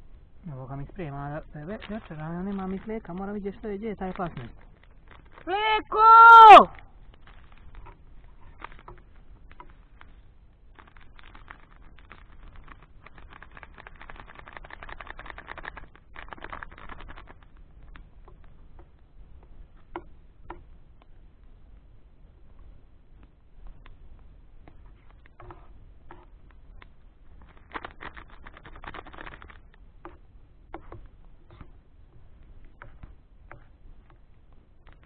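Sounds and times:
plastic packaging crinkling: 1.5 - 5.5, 6.8 - 17.7, 27.3 - 29.8.

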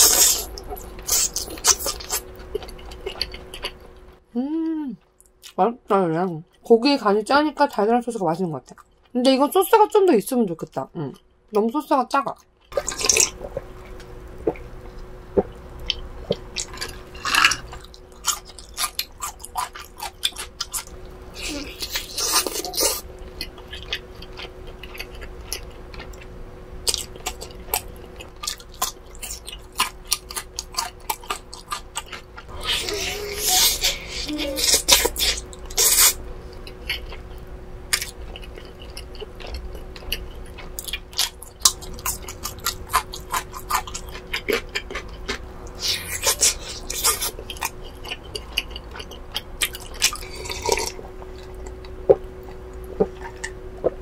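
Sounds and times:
close chewing and mouth smacks: 0.0 - 4.1, 12.4 - 33.7, 34.4 - 54.0.

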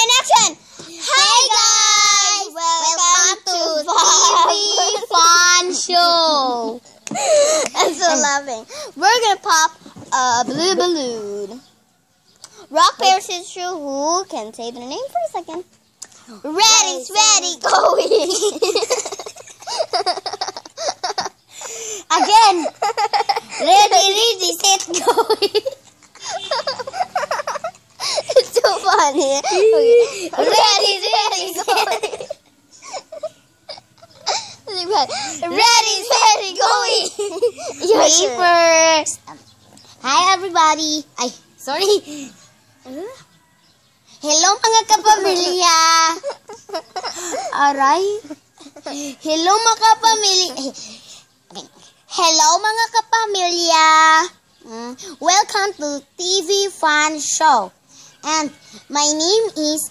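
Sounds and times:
girls giggling and squealing: 1.0 - 8.3, 17.6 - 24.2, 24.8 - 39.4, 45.1 - 49.4.

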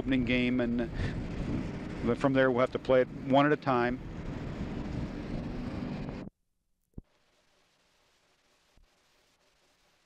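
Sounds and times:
low rumble: 0.0 - 3.3, 3.9 - 6.3.

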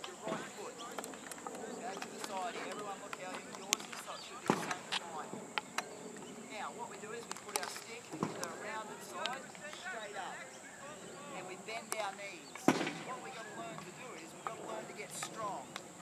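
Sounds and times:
hockey sticks hitting balls: 0.0 - 6.3, 6.9 - 10.0
children chattering faintly: 0.0 - 16.0.

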